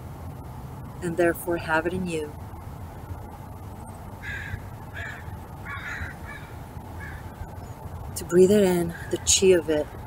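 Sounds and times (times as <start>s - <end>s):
crows cawing: 4.2s - 7.5s, 8.9s - 9.2s.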